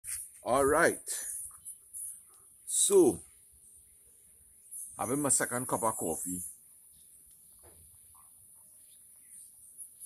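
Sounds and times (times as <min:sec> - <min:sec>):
insects trilling: 0:00.2 - 0:10.0.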